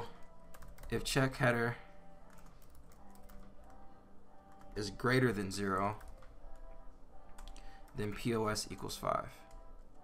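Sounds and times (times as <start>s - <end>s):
computer keyboard keystrokes: 0.1s - 1.0s, 2.3s - 3.8s, 5.9s - 6.7s.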